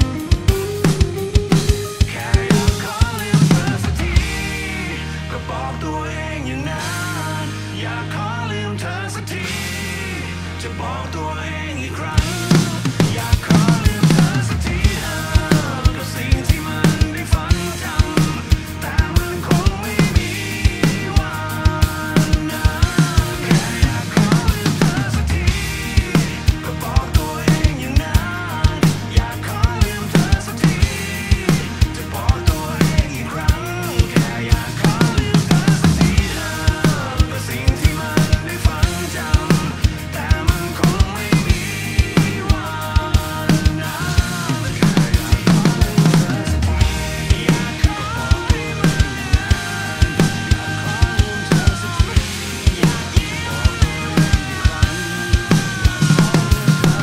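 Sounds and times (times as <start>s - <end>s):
rock drum beat: 0.0s - 5.5s, 12.1s - 57.0s
recorded band music: 0.0s - 57.0s.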